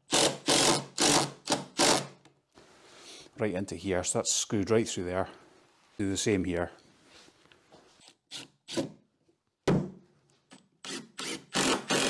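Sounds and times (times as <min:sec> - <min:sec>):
impact driver driving screw: 0:10.8 - 0:12.0.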